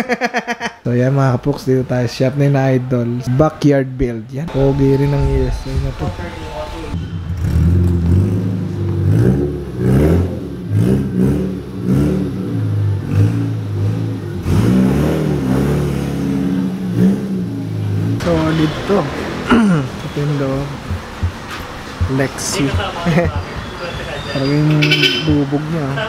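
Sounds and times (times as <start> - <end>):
voices: 0.9 - 7.1, 18.2 - 26.0
car engine revving: 4.5 - 26.0.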